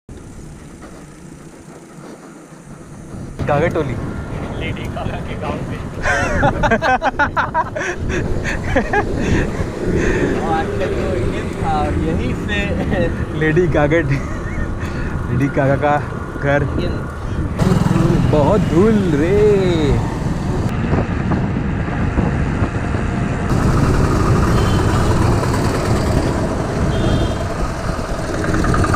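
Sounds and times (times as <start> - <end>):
road traffic noise: 0.1 - 28.9
wind buffeting microphone: 0.2 - 28.9.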